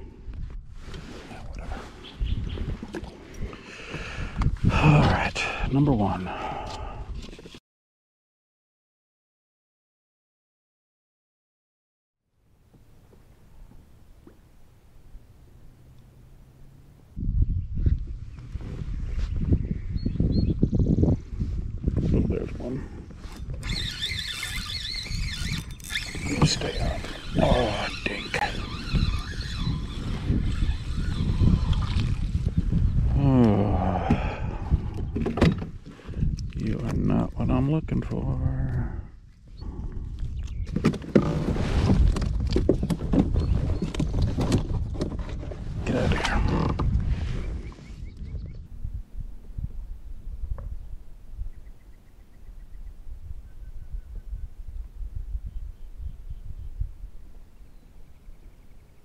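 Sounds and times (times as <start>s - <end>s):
fishing reel and rod: 23.2s - 32.6s.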